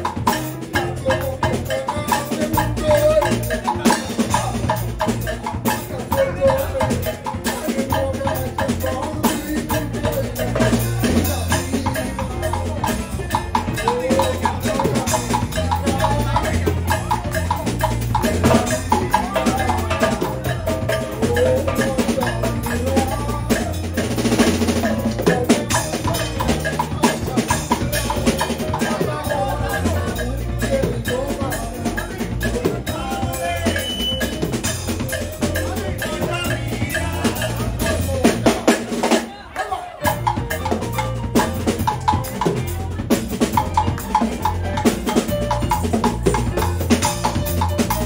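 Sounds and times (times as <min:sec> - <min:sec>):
drum kit beat: 0:00.0 - 0:48.0
jazz band playing: 0:00.0 - 0:48.0
walking bass line: 0:00.0 - 0:48.0
piano chords: 0:40.0 - 0:48.0.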